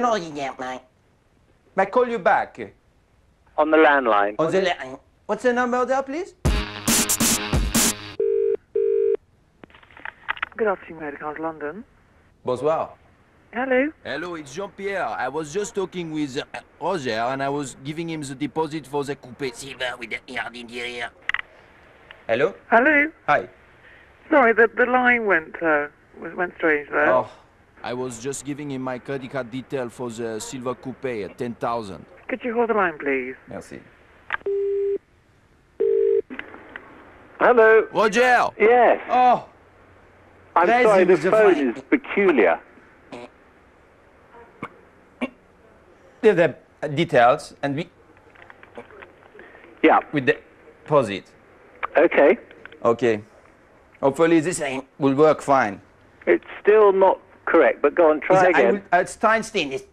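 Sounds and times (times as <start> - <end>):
loud music burst: 6.5 - 8.2
telephone ringing tone: 8.2 - 9.2, 34.5 - 35.0, 35.8 - 36.3.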